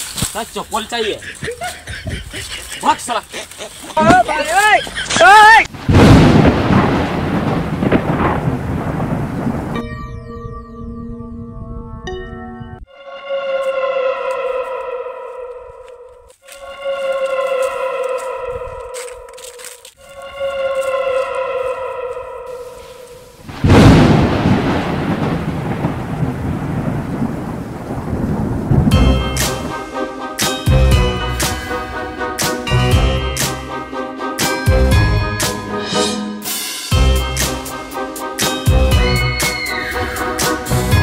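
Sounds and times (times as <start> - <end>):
low thunder-like rumble: 5.8 - 9.8, 23.5 - 29.7.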